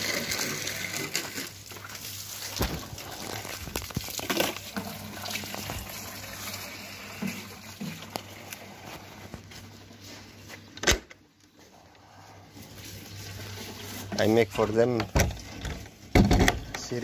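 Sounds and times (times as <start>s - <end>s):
water running from a pipe: 0.0s - 9.5s, 12.5s - 16.1s.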